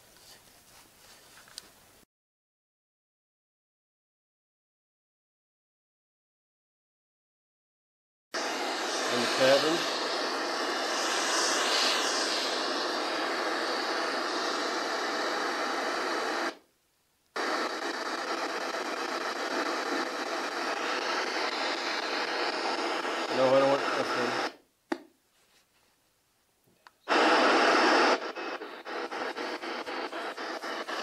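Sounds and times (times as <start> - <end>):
radio static hiss: 8.4 - 16.6, 17.4 - 24.6, 27.0 - 31.0.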